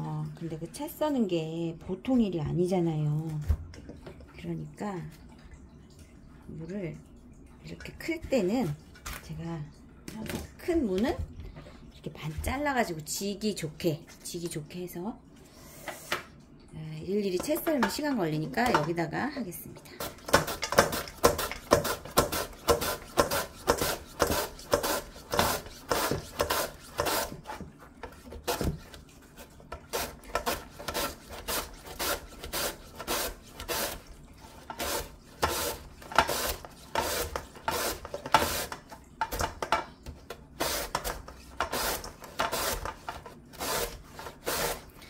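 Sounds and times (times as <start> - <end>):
radish rasping on mandoline slicer: 20.0 - 27.6, 29.9 - 34.0, 34.6 - 38.8, 40.6 - 44.8.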